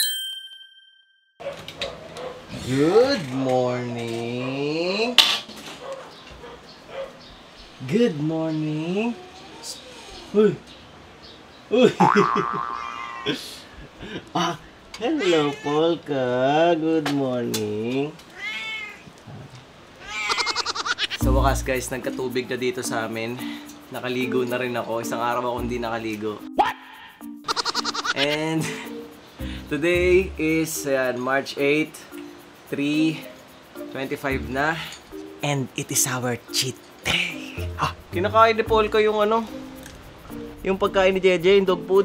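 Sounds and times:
bell-like ding: 0.0s - 1.4s
cat meowing: 9.1s - 10.3s, 12.8s - 13.4s, 15.0s - 16.0s, 18.3s - 19.2s, 20.0s - 21.2s, 27.5s - 28.2s.

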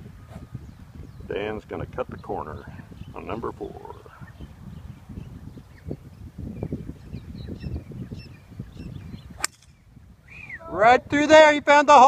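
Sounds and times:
golf club striking ball: 9.4s - 9.8s.

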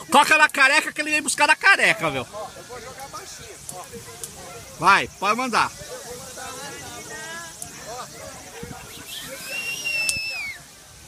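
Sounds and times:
bird of prey whistling call: 8.9s - 10.6s.

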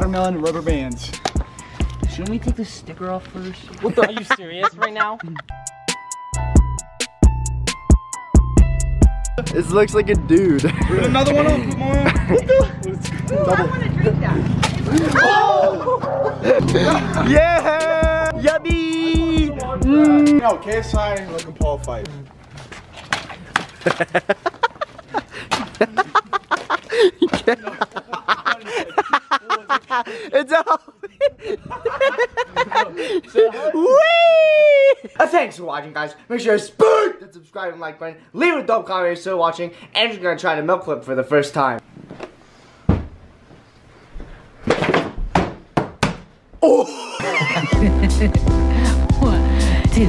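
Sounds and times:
young men laughing and chattering: 3.7s - 5.6s, 9.4s - 22.3s, 23.4s - 35.6s, 46.9s - 50.0s
plastic jug thudding on floor: 42.9s - 43.2s.

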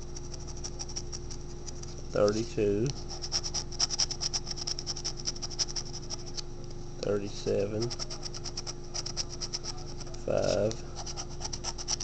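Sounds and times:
scratching lottery ticket: 0.0s - 6.5s, 7.4s - 12.0s
steady low hum: 0.0s - 12.0s.

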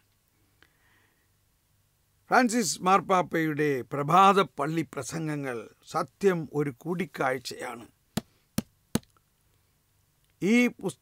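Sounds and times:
person speaking: 2.4s - 8.0s.

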